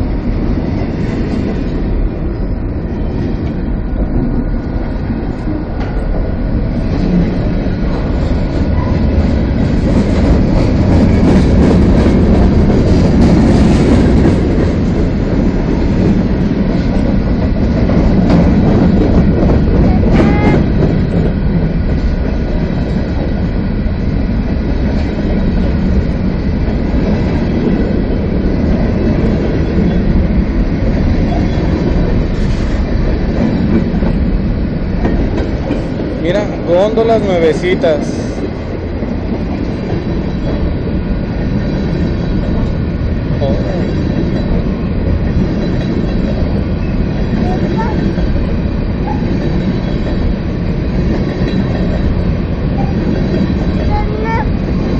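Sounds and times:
train wheels rumbling on rails: 0.0s - 54.9s.

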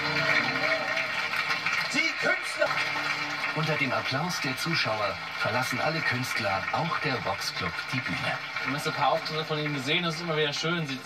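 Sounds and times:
audience applauding and cheering: 0.0s - 11.0s.

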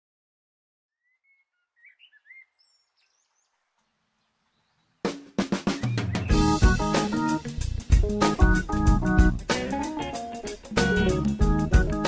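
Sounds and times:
faint bird chirps: 0.9s - 6.4s.

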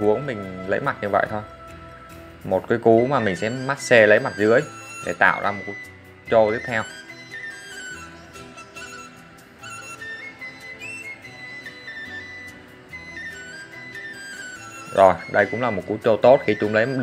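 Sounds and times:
slow melody with soft accompaniment: 0.0s - 17.0s.

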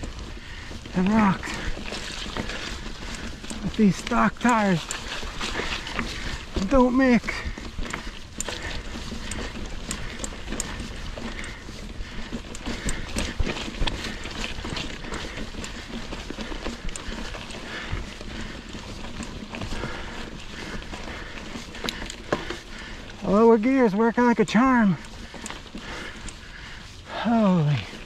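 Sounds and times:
bike rattling: 0.0s - 28.0s
tyres crunching over stones: 0.0s - 28.0s.

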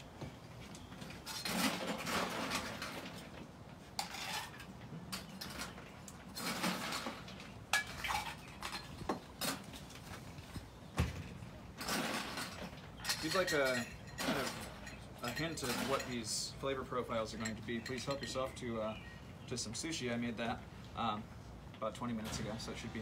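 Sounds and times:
bar tools and glassware clinking: 4.0s - 9.6s, 11.8s - 19.0s.

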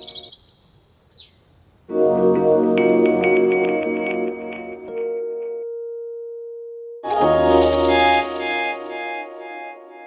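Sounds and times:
high bird chirps: 0.0s - 1.4s
chillout music: 1.9s - 10.0s.

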